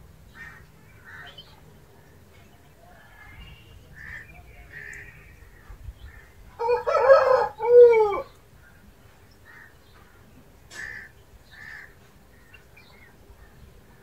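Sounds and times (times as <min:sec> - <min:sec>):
rooster crowing: 0:06.6 - 0:08.3.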